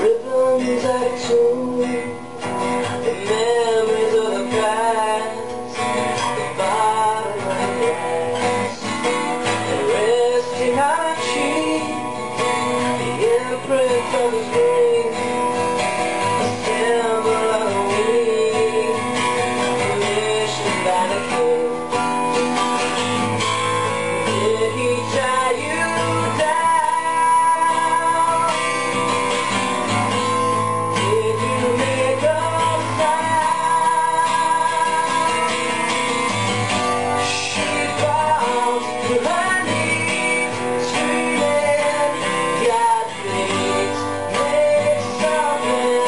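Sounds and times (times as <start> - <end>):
acoustic guitar strummed and picked: 0.0 - 46.0
man singing: 0.0 - 46.0.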